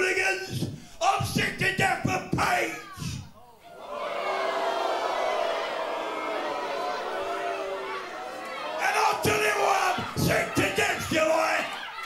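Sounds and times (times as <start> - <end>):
crowd murmuring and calling out: 3.4 - 12.0.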